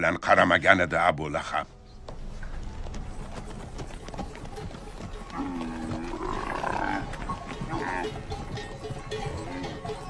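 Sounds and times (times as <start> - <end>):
horse hoofbeats on dirt: 2.0 - 10.0.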